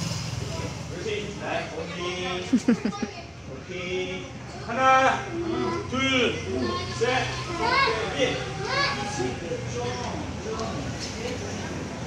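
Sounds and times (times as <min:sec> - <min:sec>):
children talking and calling out: 0:01.7 - 0:03.5, 0:04.4 - 0:10.0.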